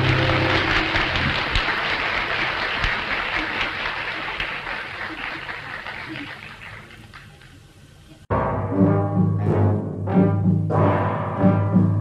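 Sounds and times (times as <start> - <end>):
audience applauding: 0.0 - 7.9.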